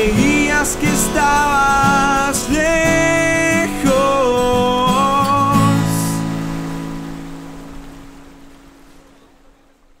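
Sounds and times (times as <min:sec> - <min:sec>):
acoustic guitar chord ringing: 0:00.0 - 0:09.4.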